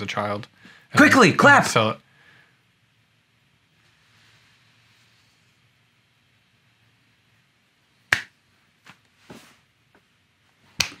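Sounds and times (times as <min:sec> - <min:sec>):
hands slapping in high five: 0:08.1 - 0:08.3, 0:10.8 - 0:11.0.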